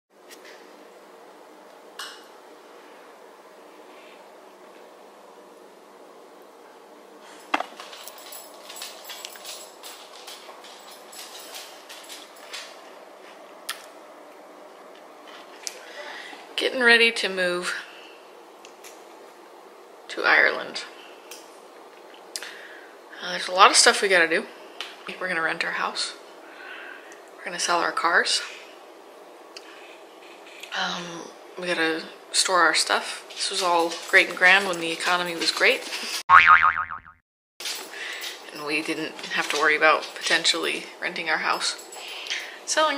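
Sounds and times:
cartoon boing effect: 36.3 - 37.2.

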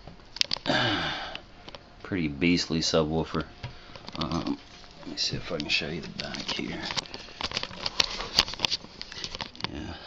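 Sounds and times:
person sighing: 0.6 - 1.4.

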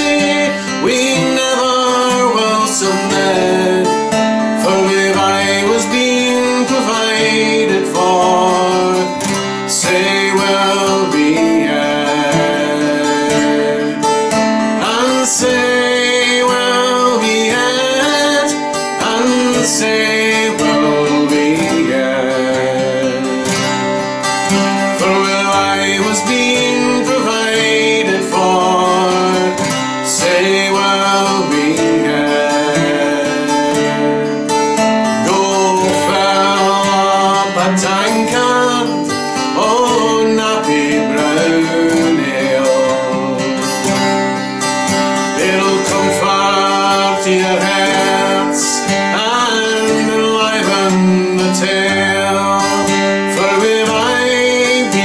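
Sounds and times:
acoustic guitar: 0.0 - 55.0
man singing folk song: 0.0 - 55.0.

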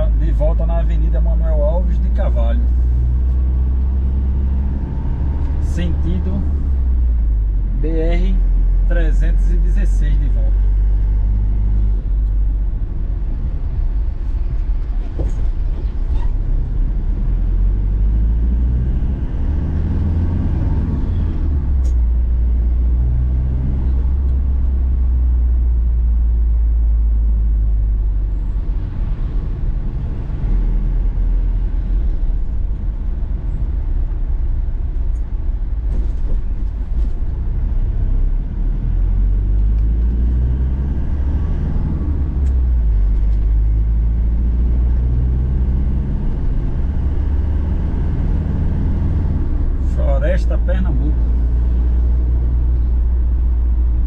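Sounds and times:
engine and road drone: 0.0 - 54.0.

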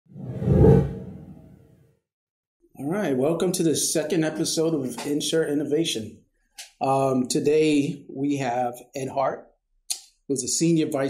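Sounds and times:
whoosh: 0.1 - 1.8.

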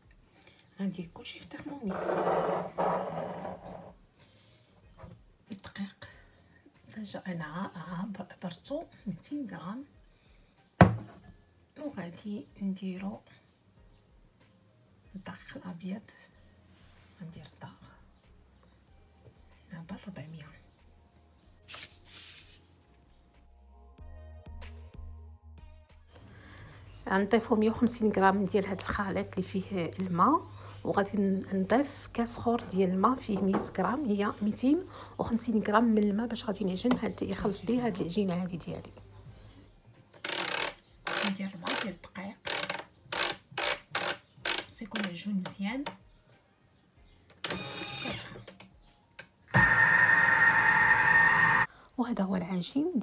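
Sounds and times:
mixer motor churning dough: 49.5 - 51.7.

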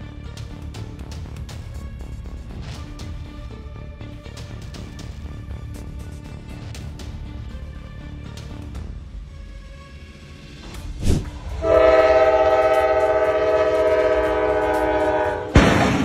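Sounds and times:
train air horn blast: 11.3 - 15.8
loud crash: 15.5 - 16.0.

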